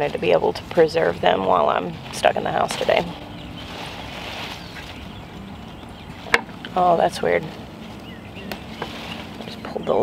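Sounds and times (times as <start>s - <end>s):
outdoor background hiss: 0.0s - 10.0s
plants rustling: 0.0s - 10.0s.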